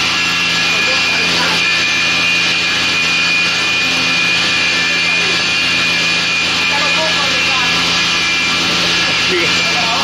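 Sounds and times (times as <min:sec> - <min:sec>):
woodworking machine whining: 0:00.0 - 0:10.0.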